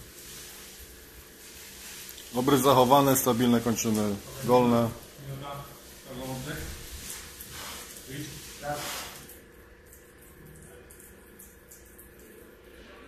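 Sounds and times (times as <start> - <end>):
low hiss: 0.0 - 9.3.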